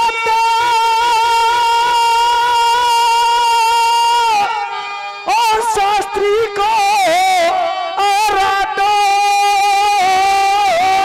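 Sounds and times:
person singing through pa: 0:00.0 - 0:11.0.

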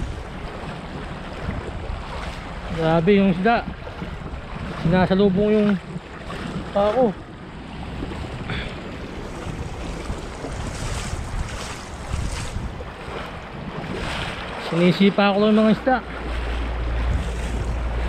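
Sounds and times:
feet splashing through water: 0:00.0 - 0:18.0
running water: 0:00.0 - 0:18.0
wind buffeting microphone: 0:00.0 - 0:18.0.

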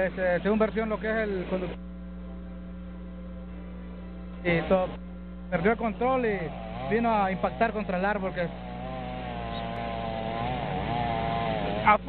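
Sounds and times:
chainsaw running: 0:04.4 - 0:12.0.

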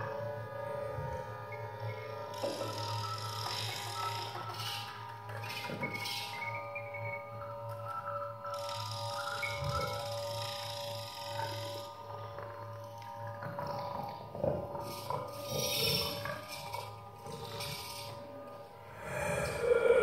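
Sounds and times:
low drone: 0:15.1 - 0:20.0
airy noisy growling bursts: 0:18.8 - 0:20.0.

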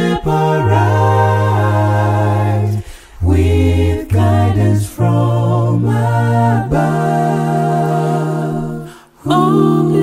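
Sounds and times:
male a cappella group singing: 0:00.0 - 0:10.0.

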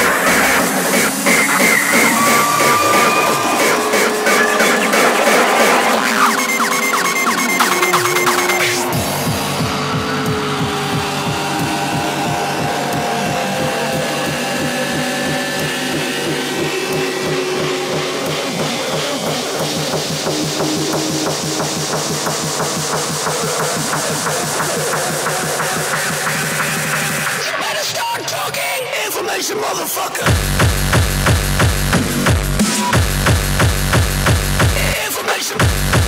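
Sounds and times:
hardcore electronic music: 0:00.0 - 0:36.0.

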